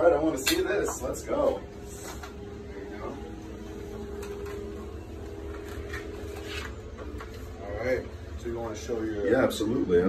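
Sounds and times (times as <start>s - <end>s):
printer humming: 0.0s - 10.0s.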